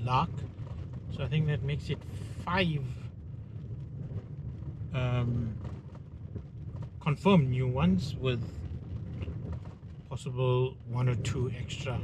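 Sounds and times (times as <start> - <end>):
low rumble inside a car: 0.0 - 12.0
wind blowing through car window: 0.0 - 12.0.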